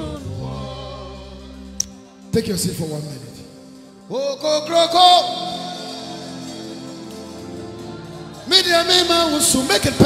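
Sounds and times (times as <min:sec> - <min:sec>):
gospel worship music: 0:00.0 - 0:10.0.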